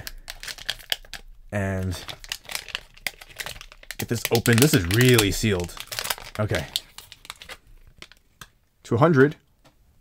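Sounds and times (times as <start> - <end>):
foil wrapper crinkling: 0.0 - 8.4.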